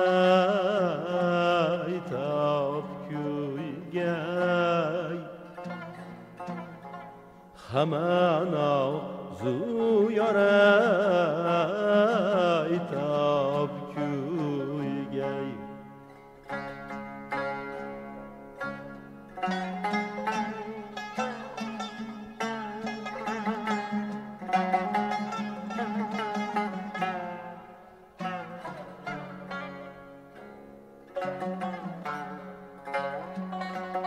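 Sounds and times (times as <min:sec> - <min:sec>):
plucked string notes: 0:00.0 - 0:34.0.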